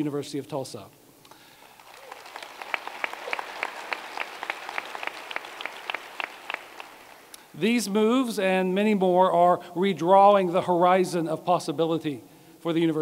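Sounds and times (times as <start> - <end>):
audience applauding: 1.6 - 7.4.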